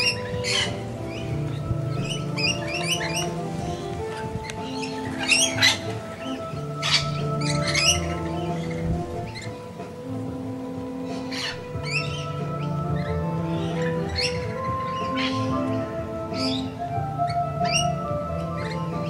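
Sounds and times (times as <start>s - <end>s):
background music with held notes: 0.0s - 19.0s
birds screeching: 0.0s - 19.0s.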